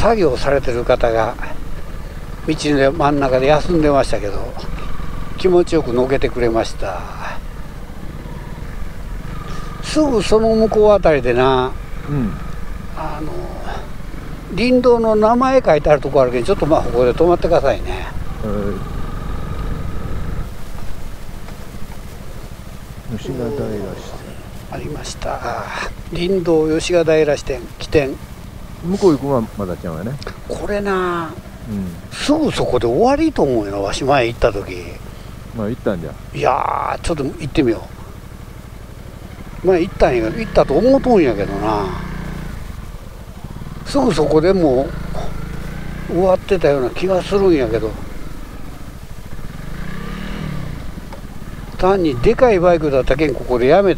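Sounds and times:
motorcycle engine at low revs: 0.0 - 53.9.

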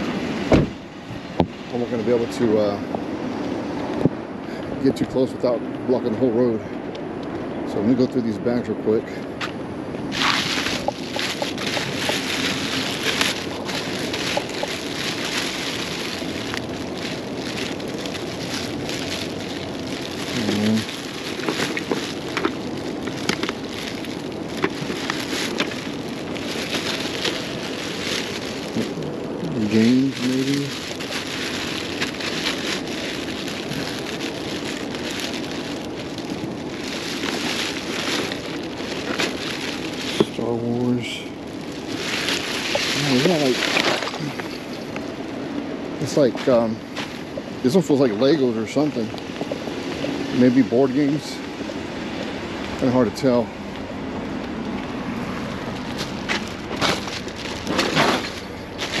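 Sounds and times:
plastic bags crinkling: 10.1 - 45.4, 46.0 - 51.4, 54.6 - 59.0
person humming: 20.3 - 20.8.

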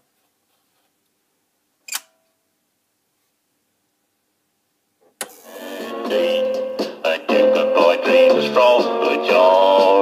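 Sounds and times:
sharp click: 1.9 - 2.2.

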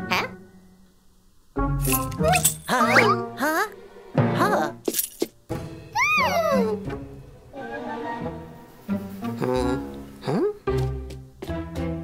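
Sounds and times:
cartoon character buzzy vocalizing: 2.2 - 3.7, 6.0 - 6.9.

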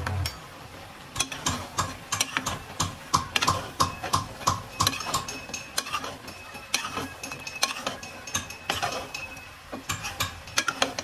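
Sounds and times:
metal spatula scraping metal pan: 1.1 - 11.0.

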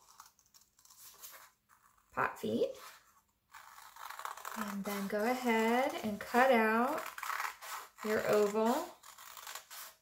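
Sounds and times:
scissors cutting paper: 0.0 - 10.0.

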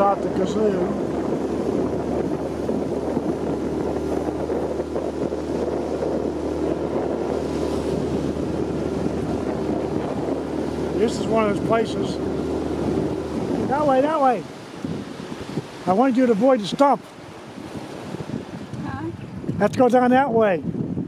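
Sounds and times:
motorboat engine droning: 0.0 - 19.1
water rushing past hull: 0.0 - 21.0
wind buffeting microphone: 0.0 - 21.0.

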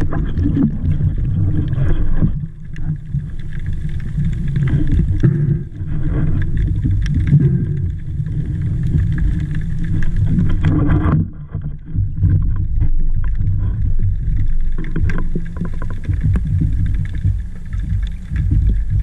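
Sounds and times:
muffled underwater rumble: 0.0 - 19.0.

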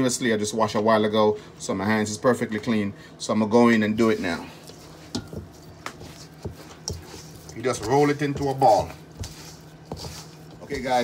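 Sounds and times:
dough kneaded in steel bowl: 0.0 - 11.0.

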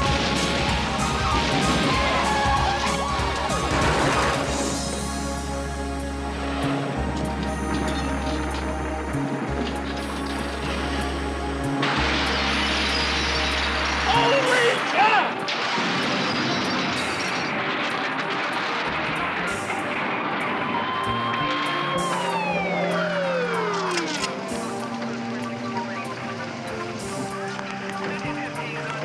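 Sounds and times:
car rolling over with squeal and smash: 0.0 - 4.9, 11.8 - 24.6
falling tone: 0.0 - 5.0, 11.8 - 27.4.

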